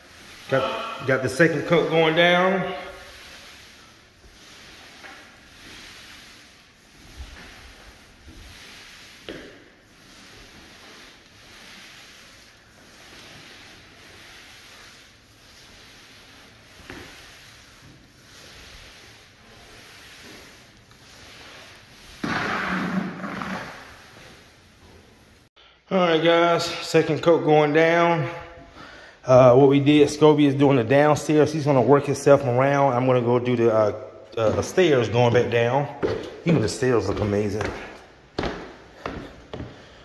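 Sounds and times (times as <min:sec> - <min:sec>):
applicator pad swishing across floor: 0:02.9 - 0:25.5.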